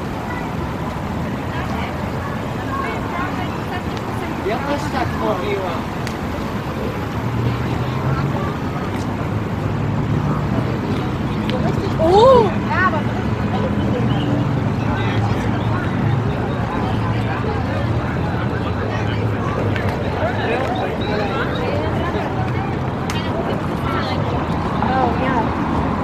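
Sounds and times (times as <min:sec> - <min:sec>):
babble of voices: 0:00.0 - 0:26.0
traffic rumble: 0:00.0 - 0:26.0.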